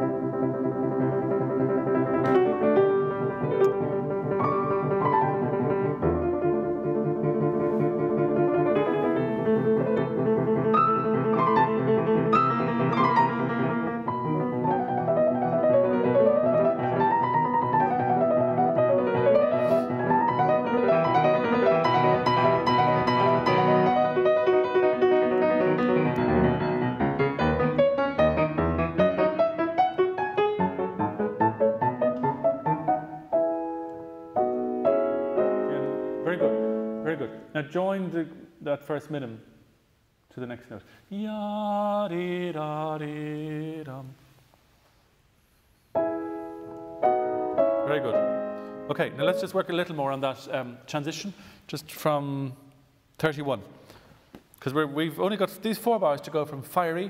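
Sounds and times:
solo classical piano: 0.0s - 37.4s, 45.9s - 50.0s.

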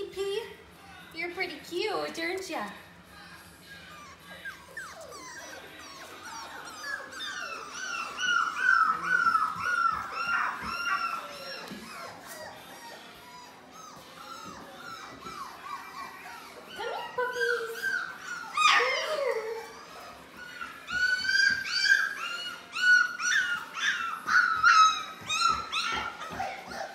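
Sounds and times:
puppies whimpering: 3.0s - 26.9s.

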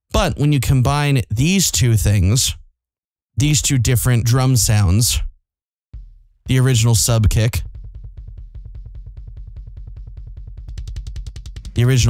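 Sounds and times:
fast double kick drum hits: 6.0s - 12.0s.

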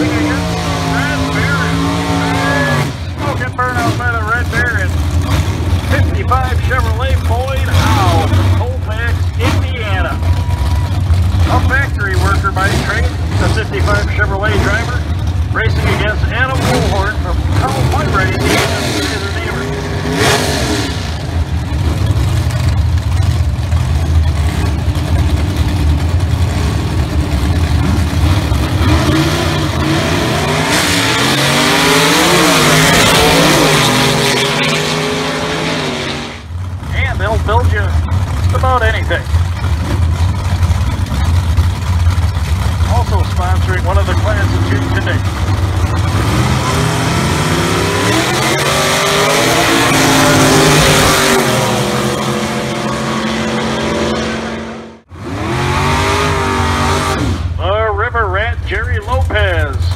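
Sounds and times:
car engines idling: 0.0s - 59.9s
drag car engines revving: 0.0s - 59.9s
drag cars launching at full throttle: 0.0s - 59.9s.

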